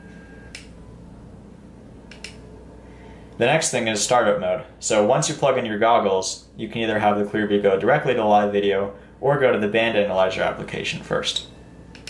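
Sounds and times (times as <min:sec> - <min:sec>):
faint steady low hum: 0:00.0 - 0:12.0.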